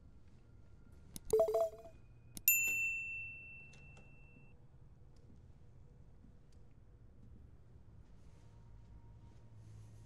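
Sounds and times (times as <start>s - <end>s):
elevator chime ding: 1.4s - 1.9s.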